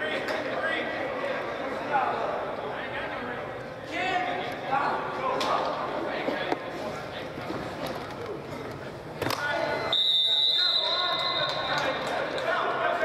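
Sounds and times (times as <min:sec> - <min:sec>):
people talking in background: 0:00.0 - 0:13.0
sports whistle blast: 0:09.9 - 0:11.7.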